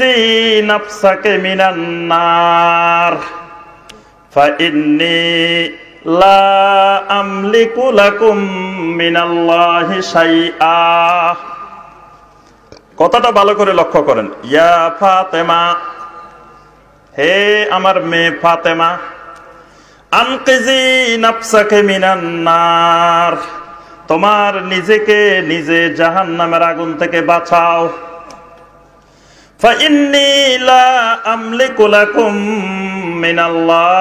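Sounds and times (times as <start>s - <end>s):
man chanting melodically: 0.0s - 12.2s, 12.8s - 28.8s, 29.6s - 34.0s.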